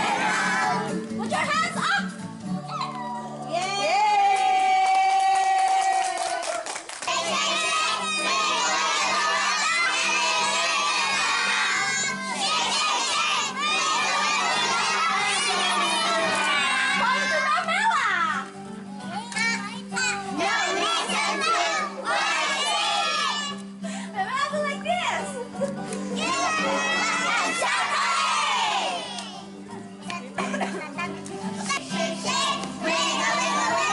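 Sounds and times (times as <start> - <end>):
children shouting and cheering: 0.0 - 2.0, 2.6 - 23.7, 26.0 - 29.5, 31.6 - 33.9
music playing: 0.0 - 5.7, 7.0 - 33.9.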